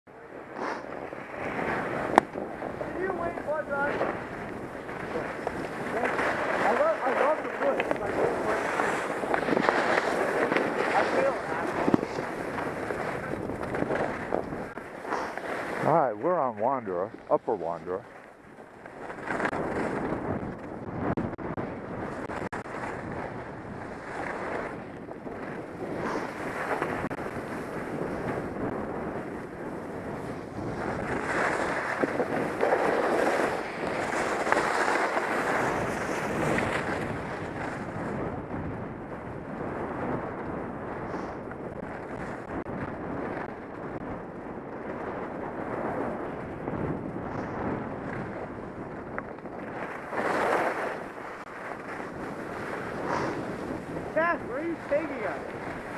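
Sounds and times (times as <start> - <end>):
wind on microphone: 0.1 - 55.9
skis scraping on snow: 0.4 - 38.3, 41.0 - 44.0, 44.8 - 55.9.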